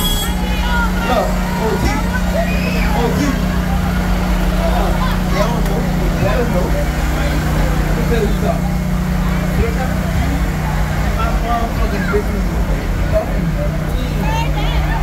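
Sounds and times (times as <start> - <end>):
crowd chatter: 0.0 - 15.0
tractor engine drone: 0.0 - 15.0.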